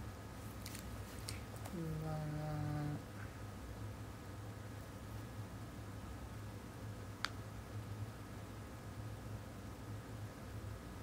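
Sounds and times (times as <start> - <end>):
woman humming: 1.7 - 3.1.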